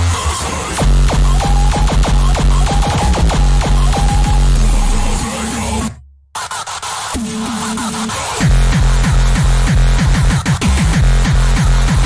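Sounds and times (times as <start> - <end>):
distorted kick drum beat: 0.0 - 12.0
hard electronic dance music: 0.0 - 12.0.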